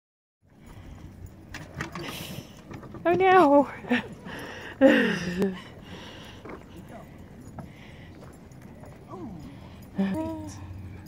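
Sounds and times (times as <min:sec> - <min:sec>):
light clicks or jingles: 0:00.5 - 0:11.0.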